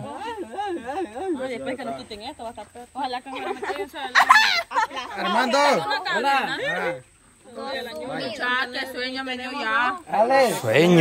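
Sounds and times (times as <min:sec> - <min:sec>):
group talking and laughing: 0:00.0 - 0:11.0.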